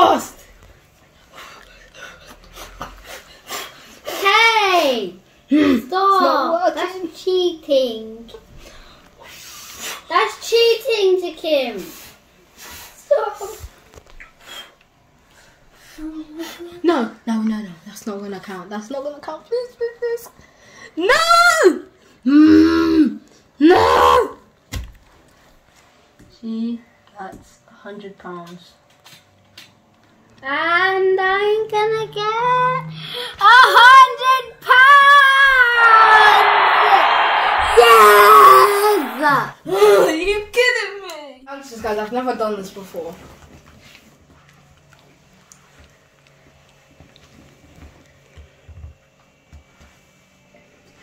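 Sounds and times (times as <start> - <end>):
child shouting: 33.5 - 39.5.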